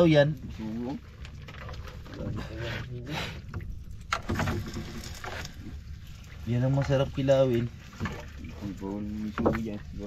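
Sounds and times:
water splashing and dripping: 0.0s - 10.0s.

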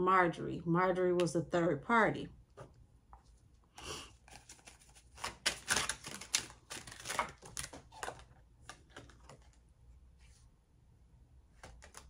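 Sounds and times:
cards being shuffled: 4.2s - 9.6s, 11.5s - 12.0s.

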